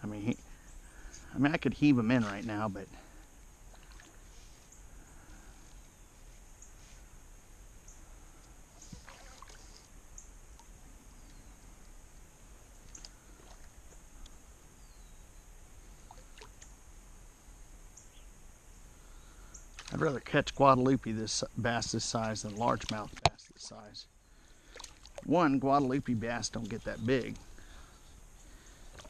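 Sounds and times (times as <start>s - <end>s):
creekside ambience: 0.0s - 29.0s
small water splashes: 3.7s - 4.3s, 8.8s - 9.8s, 16.0s - 16.7s, 19.7s - 20.2s, 22.2s - 23.9s, 24.5s - 25.4s.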